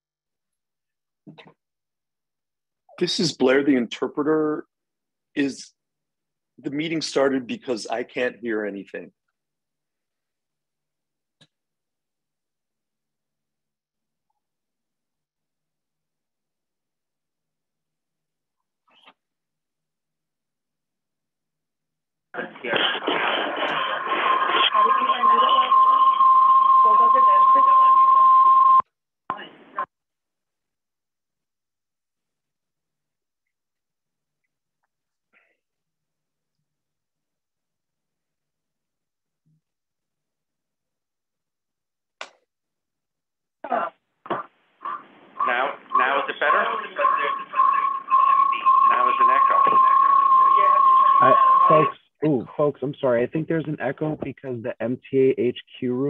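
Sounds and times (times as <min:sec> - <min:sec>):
steady feedback whistling tone: 0:24.7 - 0:28.8, 0:45.4 - 0:52.0
feedback whistling tone: 0:24.8 - 0:28.8.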